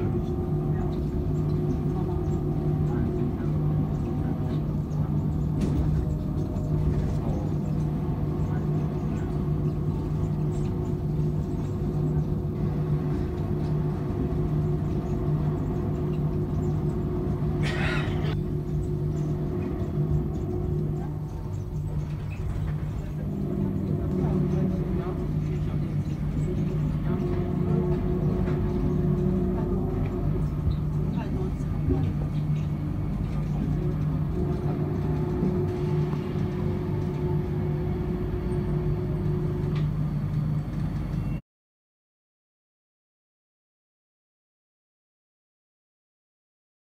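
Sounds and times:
people mover rumbling: 0.0 - 41.1.

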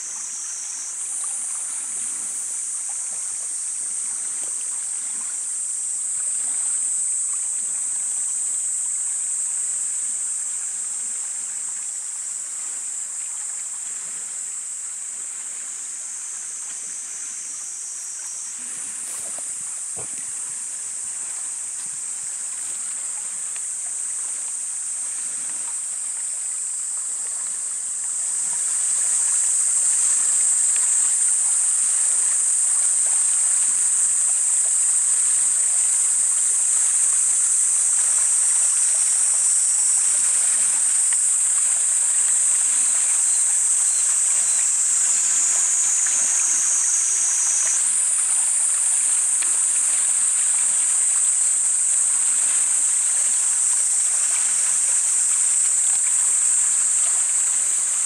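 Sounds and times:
cicadas droning: 0.0 - 58.0.

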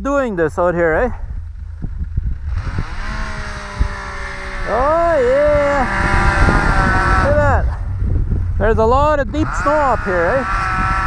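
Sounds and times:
wind buffeting microphone: 0.0 - 11.0
snowmobile engine running: 0.6 - 11.0.

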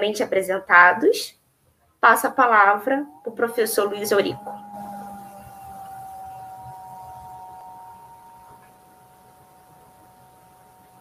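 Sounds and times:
steady electronic tone: 2.4 - 11.0.

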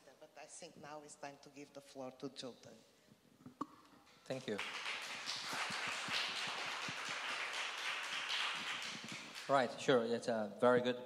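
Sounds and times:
audience applauding: 4.3 - 9.9.

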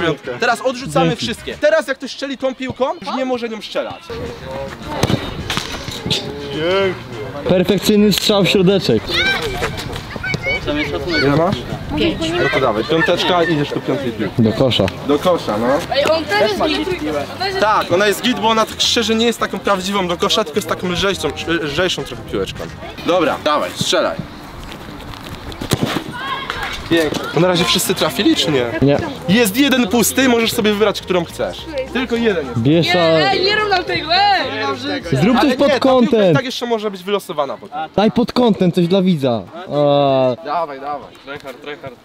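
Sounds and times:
ball kicked thud: 4.9 - 6.0.

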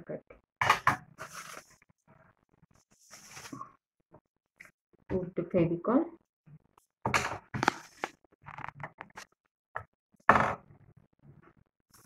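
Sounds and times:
crepe paper rustling: 1.2 - 1.8.

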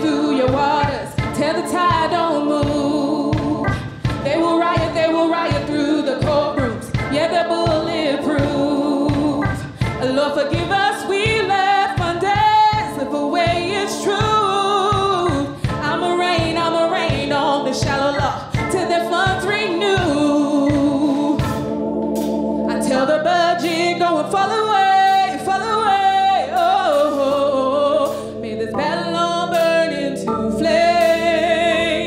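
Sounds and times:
woman singing: 0.0 - 21.7, 22.7 - 32.0
live band playing: 0.0 - 28.5.

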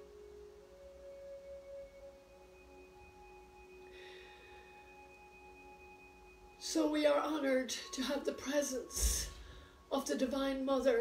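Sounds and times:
meditation music ringing tones: 0.0 - 11.0.

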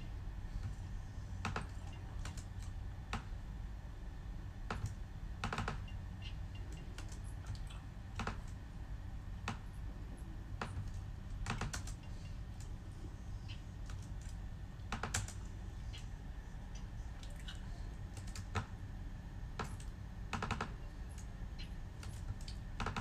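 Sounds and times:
laptop keyboard clicks: 10.6 - 12.7, 13.8 - 15.4.

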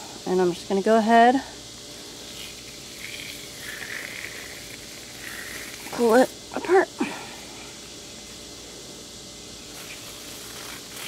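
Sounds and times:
high buzz of insects: 0.0 - 11.0.

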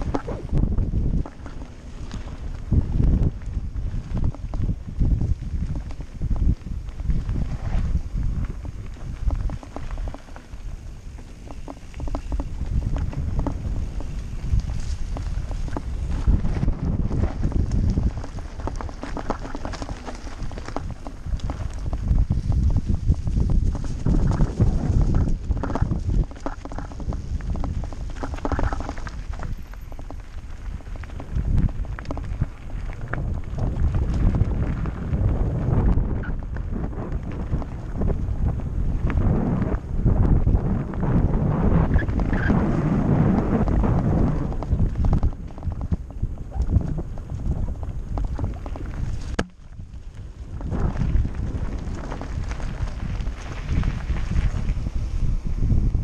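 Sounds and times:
bike rattling over gravel: 0.0 - 56.0
wind buffeting microphone: 0.0 - 56.0.

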